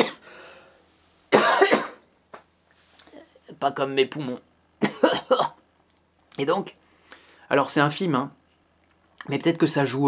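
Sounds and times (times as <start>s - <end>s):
man coughing: 0.0s - 0.3s, 1.3s - 2.1s, 4.8s - 5.6s.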